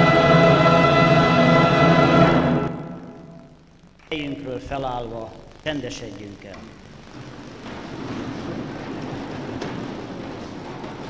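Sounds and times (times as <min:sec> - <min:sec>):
orchestra holding a loud chord: 0:00.0 - 0:03.5.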